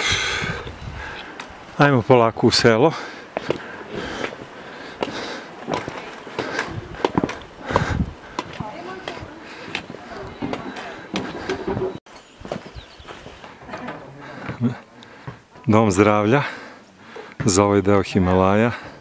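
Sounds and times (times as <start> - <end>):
footsteps on stone path: 0.6 - 1.7, 2.9 - 19.0
trekking poles tapping on stone: 5.0 - 11.7
faint voices: 5.0 - 12.0.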